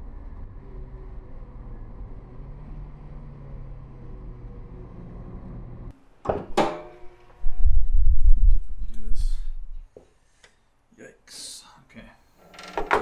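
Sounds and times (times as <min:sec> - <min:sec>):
car engine hum inside cabin: 0:00.0 - 0:06.0
road noise: 0:00.0 - 0:06.2.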